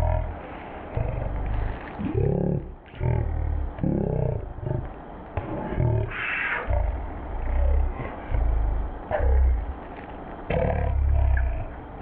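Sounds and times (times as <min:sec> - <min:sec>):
deep electronic roar burst: 0:00.0 - 0:09.8, 0:10.5 - 0:12.0.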